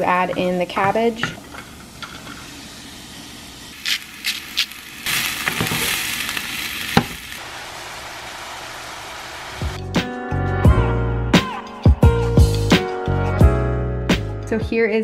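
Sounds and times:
cabbage sizzling in hot oil: 1.8 - 9.8.

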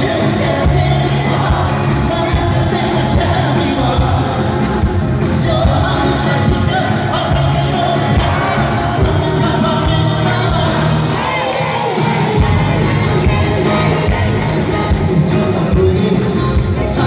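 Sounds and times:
live pop-rock band with singer: 0.0 - 17.0.

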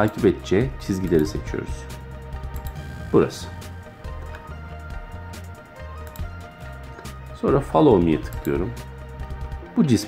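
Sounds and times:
music with low bass line: 1.7 - 9.5.

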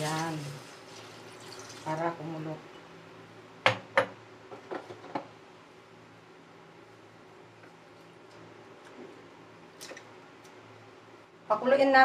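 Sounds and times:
sharp knocks of kitchenware: 3.6 - 4.2.

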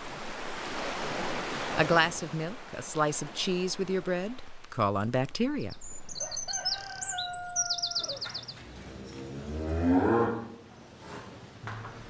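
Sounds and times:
birds chirping: 5.0 - 9.5
cow mooing: 9.0 - 10.7.

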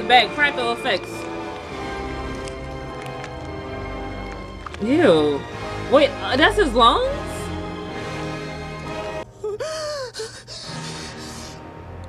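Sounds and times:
held music chord: 0.0 - 9.4
woman gasping and moaning: 9.3 - 11.7.

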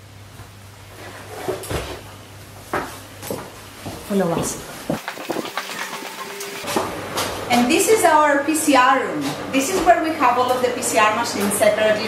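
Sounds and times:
low electrical hum: 0.0 - 5.0, 6.4 - 12.0.

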